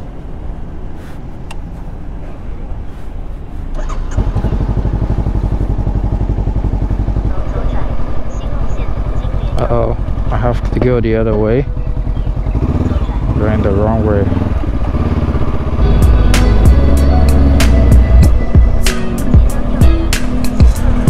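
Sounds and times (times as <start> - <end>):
motorcycle engine running: 3.6 - 21.0.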